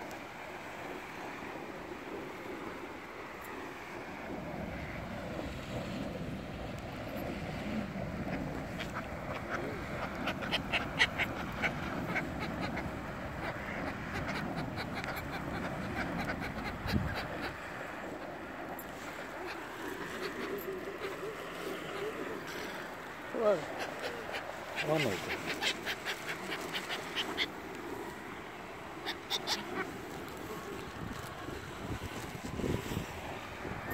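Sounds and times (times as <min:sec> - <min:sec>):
outdoor background noise: 0:00.0 - 0:33.9
ducks and gulls calling: 0:07.6 - 0:32.1.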